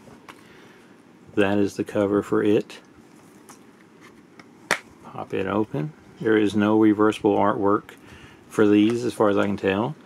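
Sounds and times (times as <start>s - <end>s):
plastic case snapping open: 4.4s - 4.9s.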